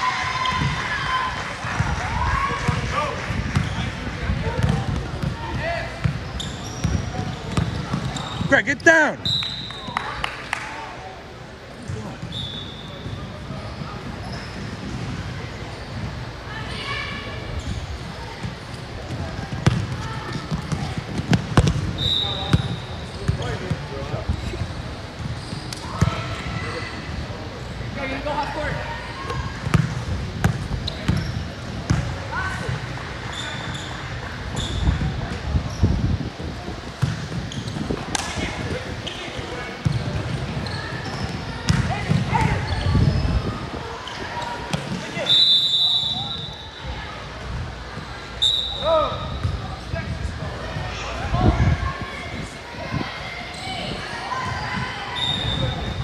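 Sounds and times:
basketball bouncing on court: 2.7 - 8.5, 19.1 - 23.8, 29.6 - 32.8, 36.9 - 38.7, 39.4 - 43.2
short high squeaks: 6.3 - 7.0.

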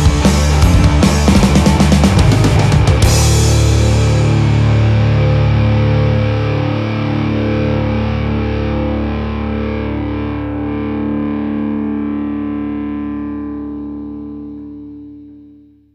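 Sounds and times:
bass guitar: 0.0 - 15.9
distorted electric guitar chord: 0.0 - 15.9.

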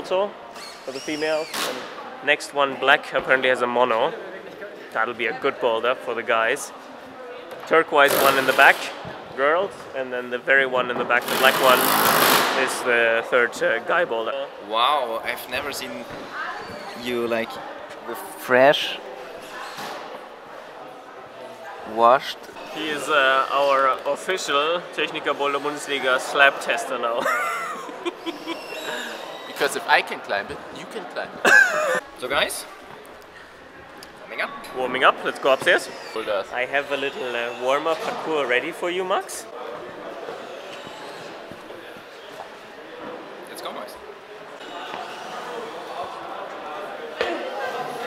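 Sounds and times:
indoor hall background noise: 0.0 - 48.0
indoor hall hum: 11.1 - 13.3.

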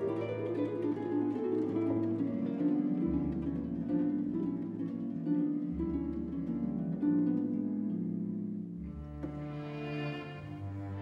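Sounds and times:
harp plucked notes: 0.0 - 11.0
string ensemble low bass notes: 0.0 - 11.0.

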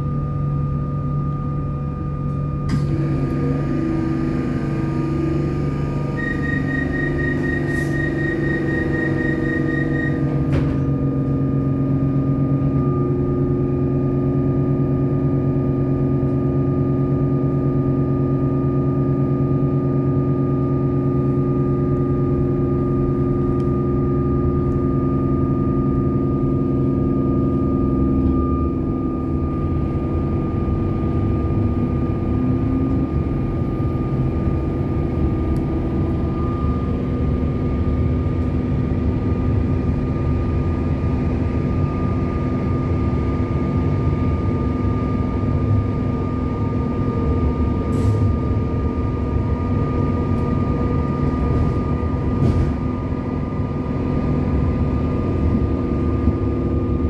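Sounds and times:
high whine: 0.0 - 31.2, 33.6 - 40.6
train electrical hum: 0.0 - 57.0.

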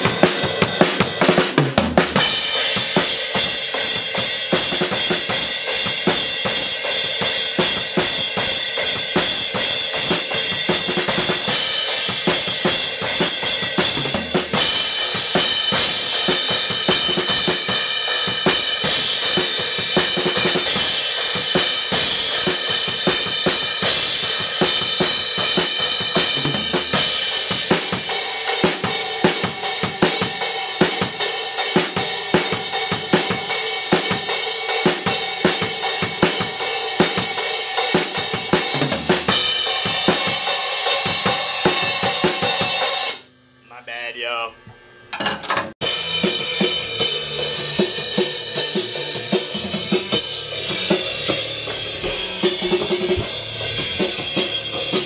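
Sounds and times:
acoustic drum kit played hard: 0.0 - 44.1, 45.6 - 55.0.

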